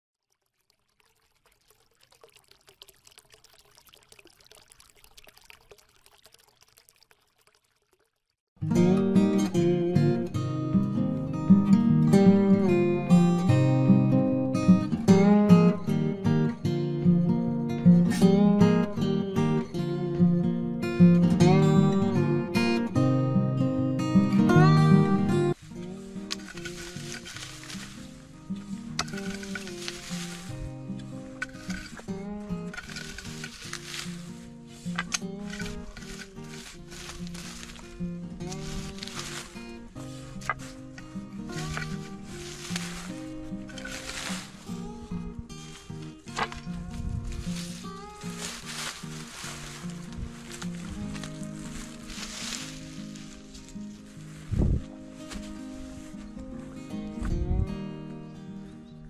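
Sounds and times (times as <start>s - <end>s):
acoustic guitar music: 8.6s - 59.0s
dry grass rustling as it's pulled: 25.5s - 57.0s.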